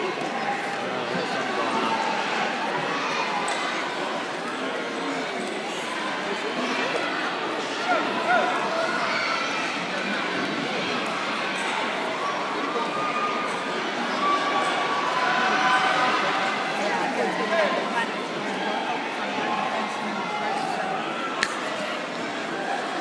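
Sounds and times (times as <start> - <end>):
crowd chatter: 0.0 - 23.0.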